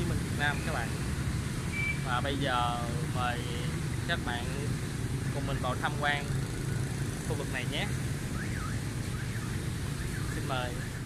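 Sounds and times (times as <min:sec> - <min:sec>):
city street traffic rumble: 0:00.0 - 0:11.0
faint electronic siren: 0:08.2 - 0:11.0.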